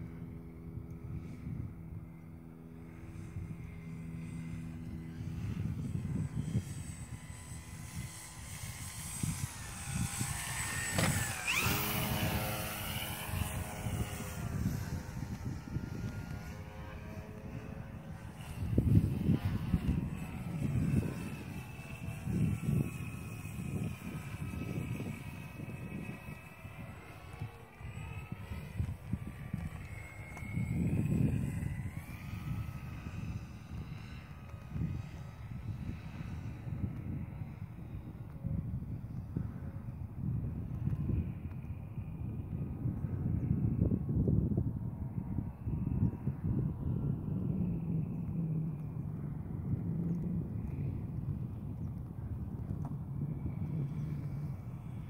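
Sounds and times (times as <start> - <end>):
model plane electric motor whine: 0.0 - 55.0.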